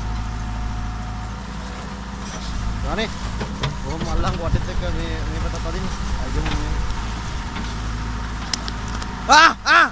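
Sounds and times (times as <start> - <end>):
diesel engine running: 0.0 - 9.9.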